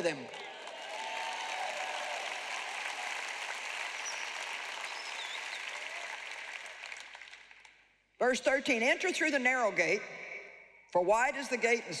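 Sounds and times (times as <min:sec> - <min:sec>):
audience applauding: 0:00.0 - 0:07.8.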